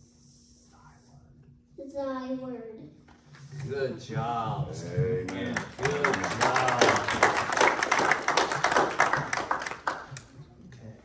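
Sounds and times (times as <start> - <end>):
audience applauding: 5.3 - 10.4.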